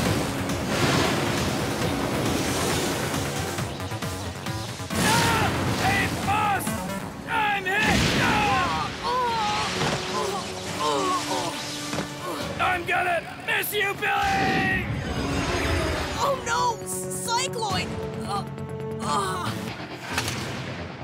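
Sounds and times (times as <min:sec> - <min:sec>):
dramatic background music: 0:00.0 - 0:21.0.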